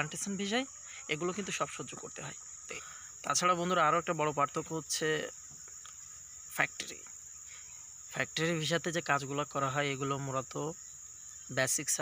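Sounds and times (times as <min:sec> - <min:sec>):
man talking: 0:00.0 - 0:05.4, 0:06.5 - 0:07.1, 0:08.1 - 0:10.8, 0:11.5 - 0:12.0
insects droning: 0:00.0 - 0:12.0.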